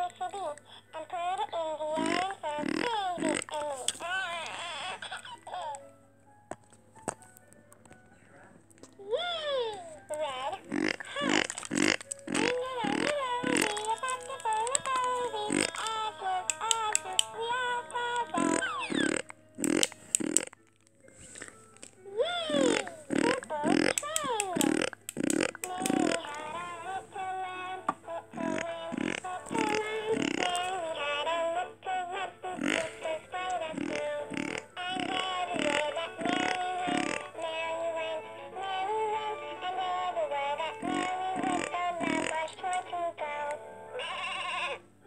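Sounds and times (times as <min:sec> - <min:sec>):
synthetic voice singing over music: 0:00.0 - 0:05.9, 0:09.0 - 0:20.4, 0:22.1 - 0:45.0
loud rasping noises: 0:02.0 - 0:05.4, 0:10.2 - 0:27.0, 0:28.3 - 0:31.3, 0:32.5 - 0:37.4, 0:40.7 - 0:42.5
toy electronic tune: 0:18.3 - 0:20.4.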